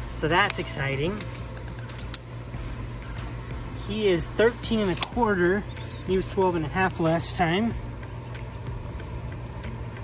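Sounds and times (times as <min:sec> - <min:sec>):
steady low hum: 0:00.0 - 0:10.0
tape measure clicks and rattles: 0:00.3 - 0:02.3.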